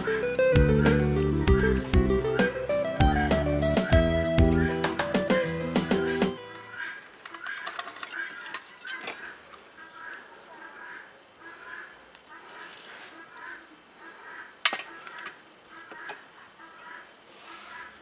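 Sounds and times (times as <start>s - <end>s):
birds calling: 0.0s - 18.0s.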